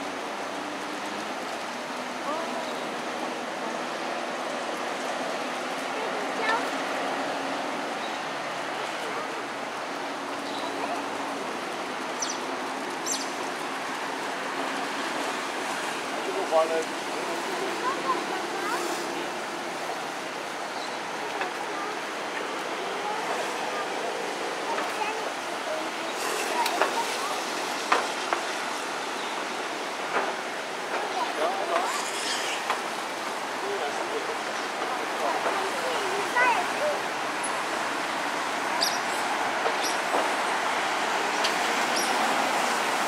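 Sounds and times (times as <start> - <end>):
water rushing: 0.0 - 43.0.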